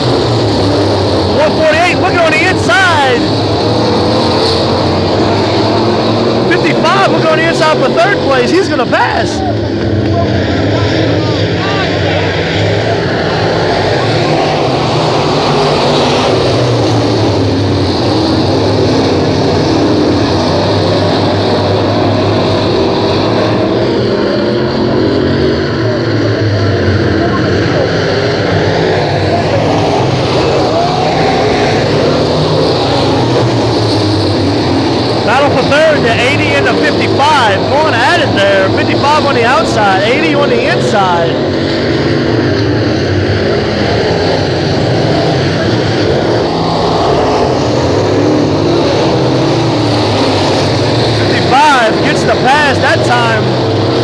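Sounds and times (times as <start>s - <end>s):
race car engines: 0.0s - 54.0s.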